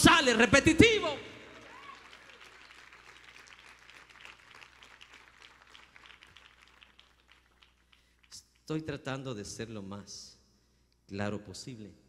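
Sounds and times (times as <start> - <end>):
faint scattered applause: 1.5 - 8.6.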